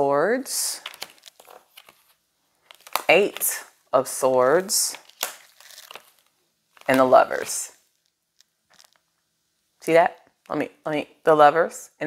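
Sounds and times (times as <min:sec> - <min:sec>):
papery rustling: 0:00.8 - 0:03.6, 0:04.5 - 0:07.8.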